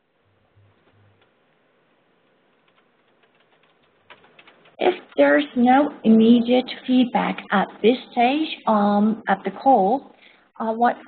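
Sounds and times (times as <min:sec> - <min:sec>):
keyboard typing: 0:02.4 - 0:05.2.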